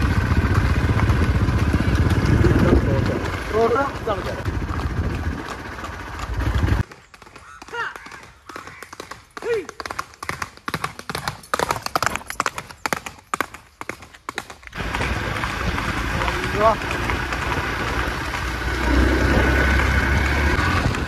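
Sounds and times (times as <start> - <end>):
low engine rumble: 0.0 - 6.8
hooves clopping on pavement: 0.0 - 21.0.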